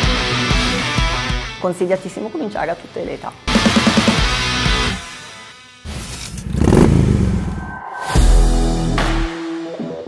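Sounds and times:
background music: 0.0s - 10.0s
motorcycle engine revving: 5.9s - 7.7s.

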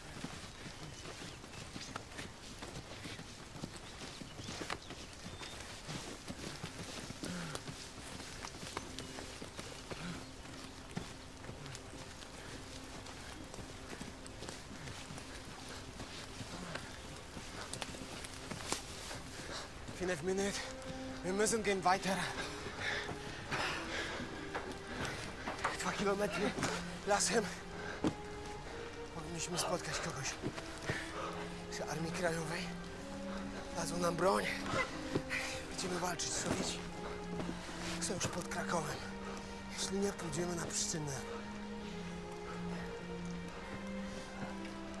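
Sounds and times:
faint held music tone: 0.0s - 45.0s
footsteps through undergrowth: 0.0s - 45.0s.

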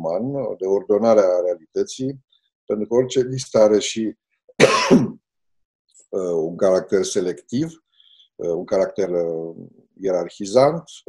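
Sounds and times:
man clearing his throat: 4.6s - 5.2s.

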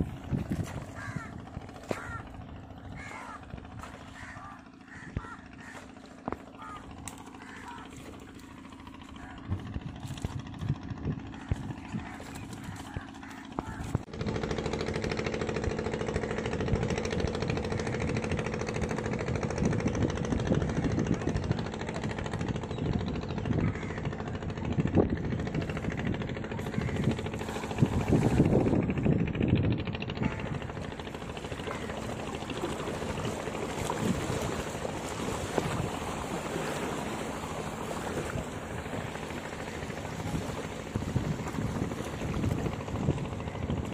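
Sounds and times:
splashing water: 0.0s - 14.2s, 25.6s - 29.0s, 30.2s - 43.9s
small engine droning: 0.0s - 43.9s
wind: 0.0s - 43.9s.

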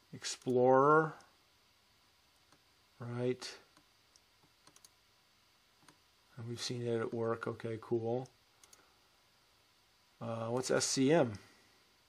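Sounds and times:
person speaking: 0.0s - 1.3s, 3.0s - 3.8s, 6.3s - 8.4s, 10.2s - 11.6s
computer mouse clicks: 3.7s - 5.0s, 5.8s - 6.0s, 8.2s - 8.9s.

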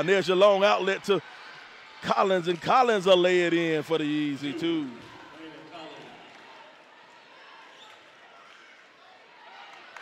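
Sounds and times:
low crowd murmur: 4.1s - 10.0s.

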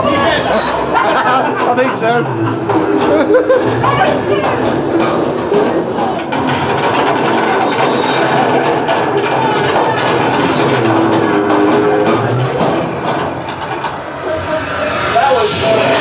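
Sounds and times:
elevator rattling and rumbling: 0.0s - 16.0s.

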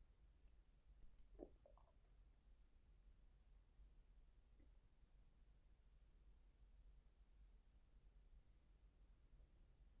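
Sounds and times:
faint low sound: 0.0s - 10.0s
faint high clicks: 1.0s - 1.9s.

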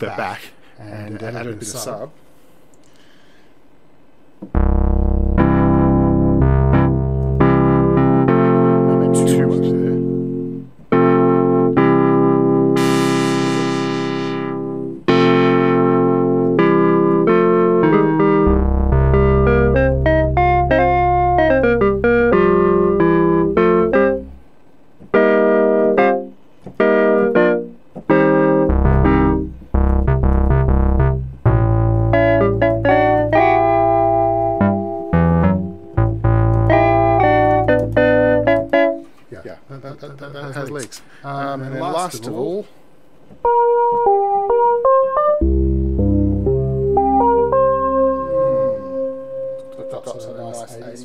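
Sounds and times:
synthesizer chords: 4.5s - 24.4s, 25.2s - 39.0s, 44.1s - 49.6s
low synth bass: 4.6s - 8.6s, 12.8s - 15.9s, 18.4s - 24.3s, 28.7s - 38.5s, 45.4s - 48.1s.

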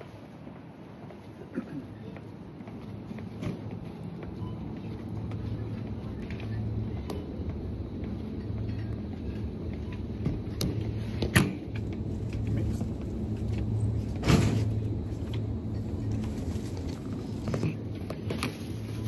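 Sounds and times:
low hum: 2.9s - 19.0s.

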